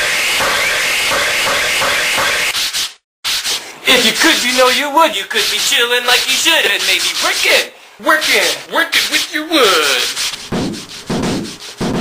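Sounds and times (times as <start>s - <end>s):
sandpaper rasping on wood: 2.6s - 12.0s.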